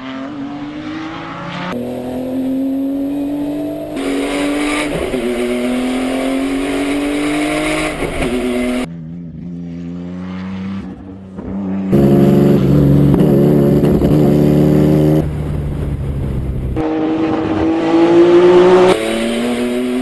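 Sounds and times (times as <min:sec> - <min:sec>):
race car engine accelerating: 0:00.0 - 0:15.6, 0:16.6 - 0:20.0.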